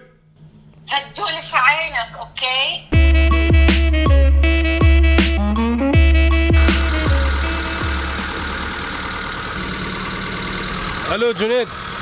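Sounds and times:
electronic music with deep bass: 3.0s - 8.4s.

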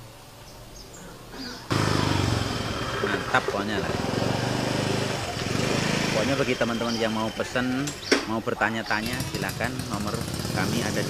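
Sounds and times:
small engine running: 1.7s - 8.3s, 9.0s - 11.0s.

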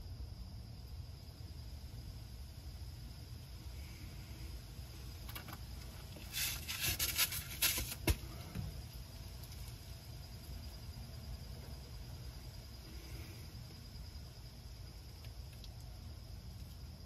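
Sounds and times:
insect chirring: 0.0s - 17.0s
low background rumble: 0.0s - 17.0s.

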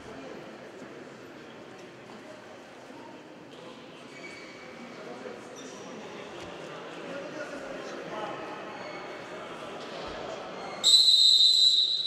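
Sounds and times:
referee's whistle long blast: 10.8s - 12.0s.

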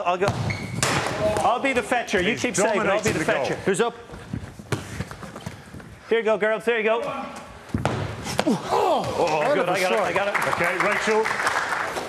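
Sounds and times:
footsteps: 1.7s - 6.2s.

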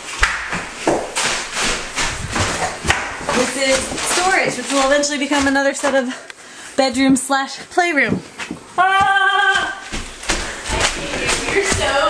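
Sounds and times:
soft footstep knocks: 0.2s - 6.0s.

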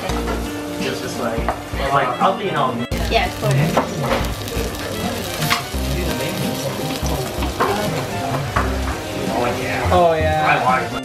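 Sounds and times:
food sizzling on a griddle: 0.0s - 2.0s, 2.9s - 11.0s.

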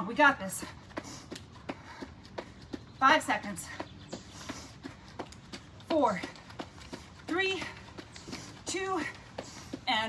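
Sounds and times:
sneakers tapping on stone: 0.6s - 10.0s.

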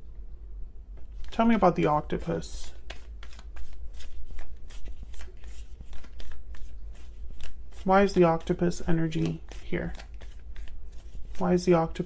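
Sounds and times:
cards being shuffled: 1.0s - 12.0s.

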